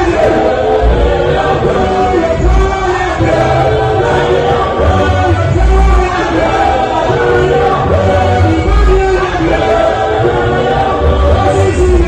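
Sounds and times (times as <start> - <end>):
choir singing gospel song: 0.0 - 12.0
deep bass notes: 0.0 - 12.0
male lead voice singing: 0.0 - 12.0.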